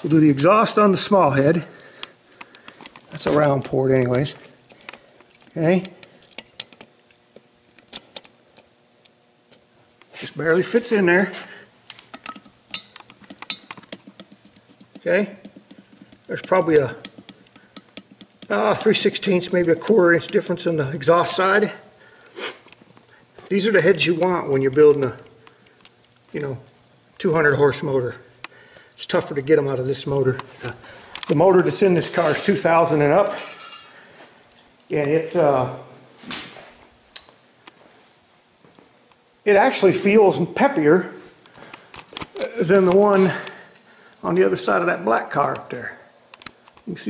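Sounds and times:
metallic clicks of measuring gauge: 0:11.9 - 0:20.5.

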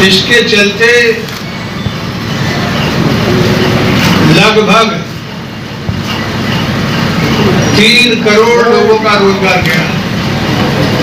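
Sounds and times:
rumbling crowded hall noise: 0:00.0 - 0:11.0.

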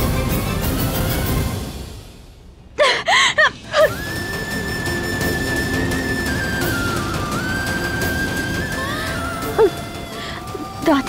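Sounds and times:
woman sobbing: 0:02.8 - 0:04.4, 0:07.5 - 0:11.0
gasping cries: 0:02.8 - 0:04.6, 0:05.2 - 0:11.0.

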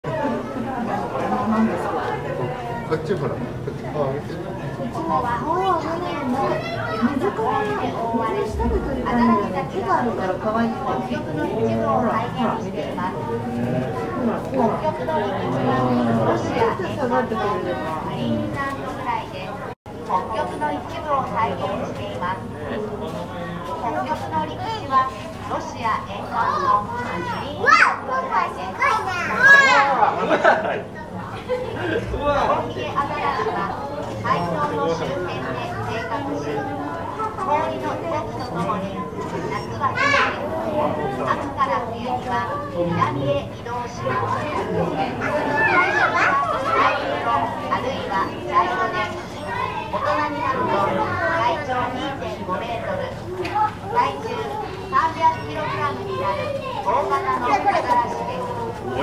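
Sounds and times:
people talking indistinctly: 0:00.0 - 0:59.0
children's voices: 0:04.6 - 0:59.0
spoken announcement: 0:08.1 - 0:12.5.

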